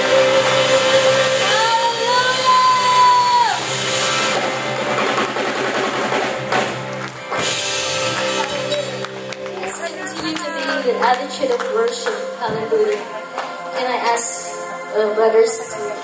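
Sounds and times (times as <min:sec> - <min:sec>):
drums: 0:00.0 - 0:10.5
worship band playing: 0:00.0 - 0:16.0.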